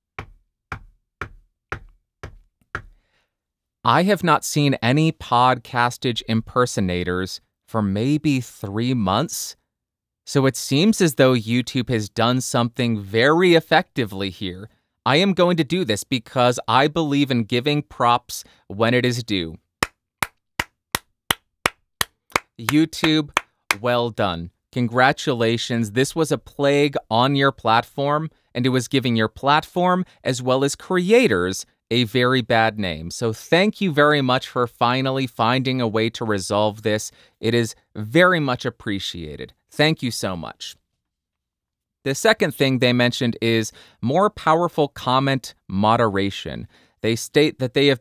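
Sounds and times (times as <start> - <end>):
knuckles knocking on wood: 0.2 - 3.0
slow hand claps: 0.2 - 3.0, 19.8 - 23.8.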